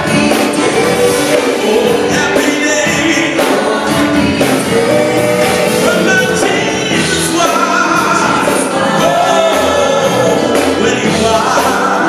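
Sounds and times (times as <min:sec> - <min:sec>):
band accompaniment: 0:00.0 - 0:12.0
vocal group singing gospel: 0:00.0 - 0:12.0.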